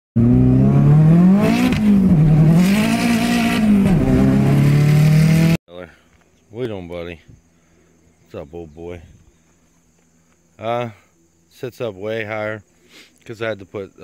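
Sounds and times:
car engine accelerating: 0.2 - 5.6.

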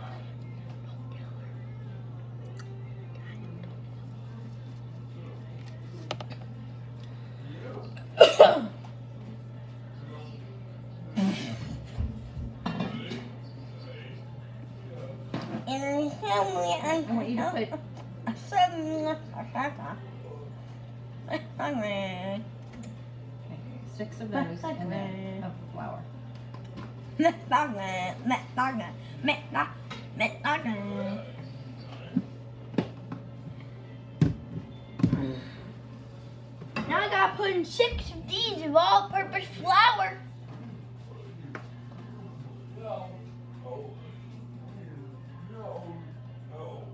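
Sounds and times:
steady low hum: 0.0 - 46.9.

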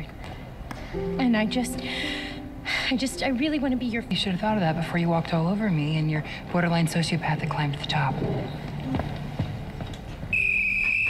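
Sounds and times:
whistle long high blast: 10.3 - 11.0.

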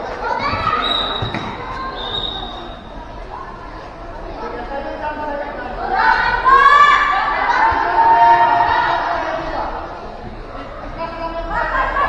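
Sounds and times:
people calling out in hall: 0.0 - 12.0.

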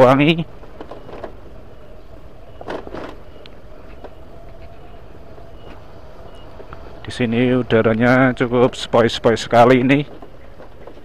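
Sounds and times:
motorcycle engine running: 1.0 - 9.6.

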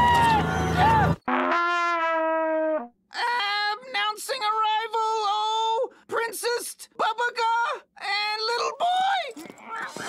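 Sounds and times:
cartoon horn blowing: 1.3 - 2.9.

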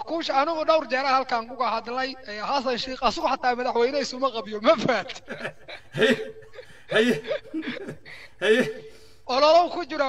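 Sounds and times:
man chuckling: 5.2 - 9.1.

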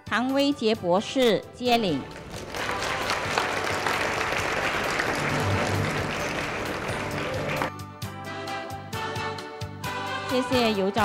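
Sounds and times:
background music: 0.0 - 11.0
audience applauding: 1.9 - 7.7.

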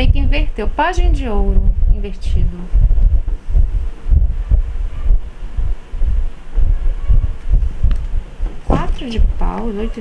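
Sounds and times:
air buffeting microphone: 0.0 - 10.0.

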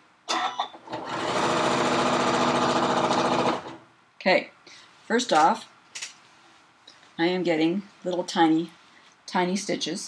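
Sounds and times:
sewing machine stitching: 0.3 - 3.8.

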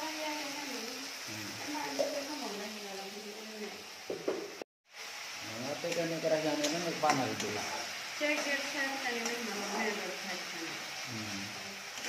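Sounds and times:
paste sizzling in oil: 0.0 - 12.0
spatula stirring: 5.9 - 10.2.

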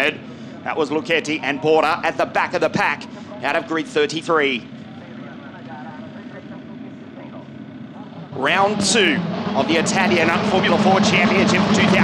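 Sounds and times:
distant race car engines: 0.0 - 12.0
faint crowd voices: 0.0 - 12.0.

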